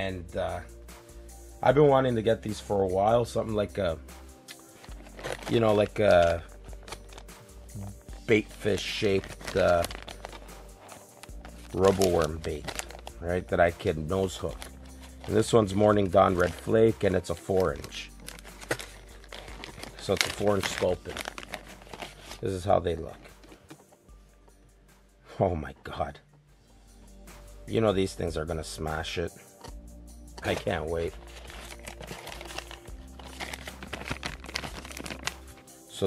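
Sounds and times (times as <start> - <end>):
quiet background music: 0.0 - 36.0
plastic packet crinkling: 4.8 - 7.3, 8.6 - 22.4, 30.4 - 35.6.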